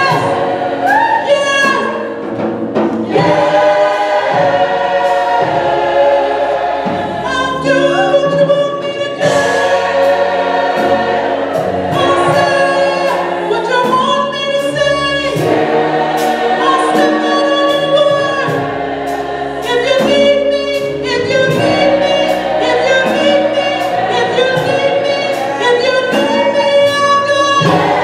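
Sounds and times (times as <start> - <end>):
gospel choir singing: 0.0 - 28.0.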